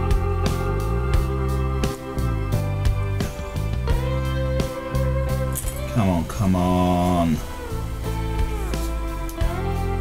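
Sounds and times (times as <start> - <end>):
guitar background music: 0.0 - 10.0.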